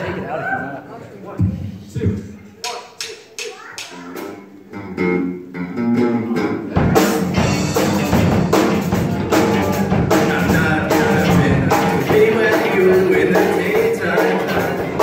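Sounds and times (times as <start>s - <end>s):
rock band playing: 4.0s - 15.0s
drum hits: 6.7s - 15.0s.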